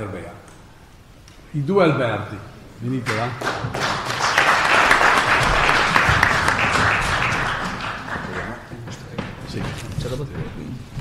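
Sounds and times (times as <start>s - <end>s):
audience applauding: 3.1s - 9.1s.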